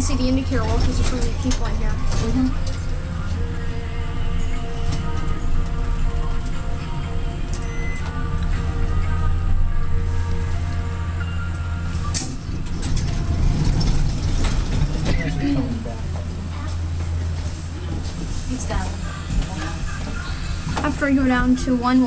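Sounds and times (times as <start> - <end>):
elevator doors opening: 0.0 - 22.0
elevator low hum: 0.0 - 22.0
elevator stopping click: 7.4 - 9.4, 11.2 - 15.7.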